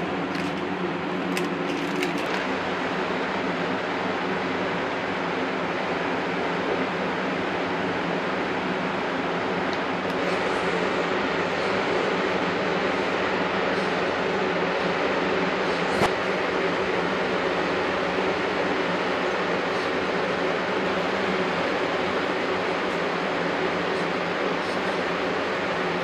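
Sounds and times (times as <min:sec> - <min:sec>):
low machine hum: 0:00.0 - 0:26.0.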